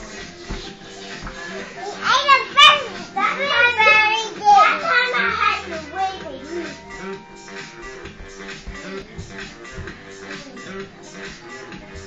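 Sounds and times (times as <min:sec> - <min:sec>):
pop music: 0:00.0 - 0:12.0.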